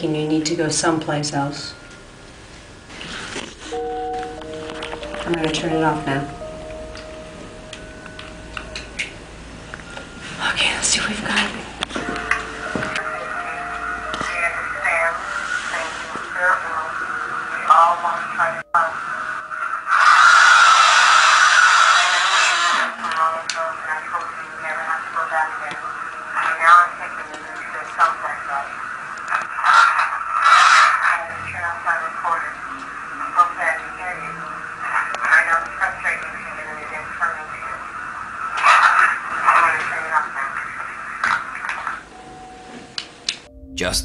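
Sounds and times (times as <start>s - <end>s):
tinny voice through small speaker: 13.0s - 19.2s, 23.0s - 28.7s, 38.6s - 40.8s, 43.7s - 44.0s
harsh noisy burst: 19.8s - 23.0s.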